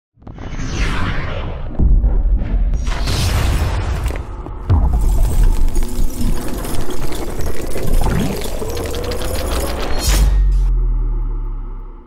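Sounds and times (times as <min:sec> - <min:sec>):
rising tone: 0:06.2 - 0:12.0.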